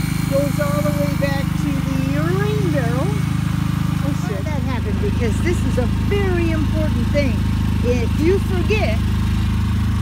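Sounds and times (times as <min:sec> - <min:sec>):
generator engine drone: 0:00.0 - 0:10.0.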